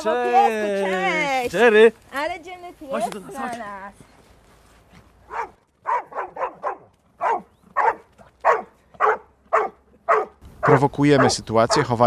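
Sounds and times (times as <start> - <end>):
dog barking: 5.3 - 12.0.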